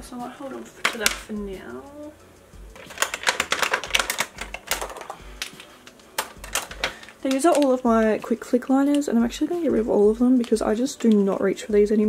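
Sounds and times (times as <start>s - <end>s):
plastic pens clicking and clattering: 0.5s - 1.3s, 2.8s - 12.0s.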